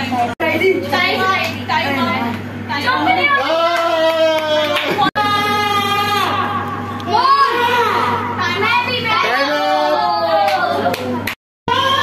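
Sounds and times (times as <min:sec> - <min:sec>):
children's voices: 0:04.8 - 0:12.0.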